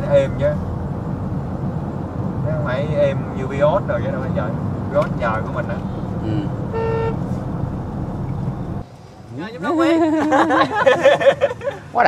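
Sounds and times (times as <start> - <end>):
car engine and road rumble: 0.0 - 12.0
car horn toot: 6.4 - 7.5.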